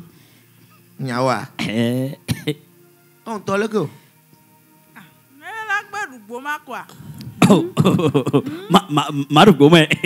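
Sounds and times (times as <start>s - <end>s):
person coughing hard: 2.3s - 2.6s, 7.4s - 9.0s.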